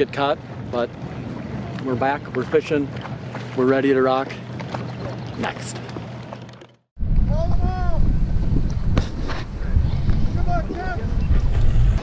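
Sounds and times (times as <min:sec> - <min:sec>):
wind buffeting microphone: 0:00.0 - 0:06.3, 0:07.0 - 0:12.0.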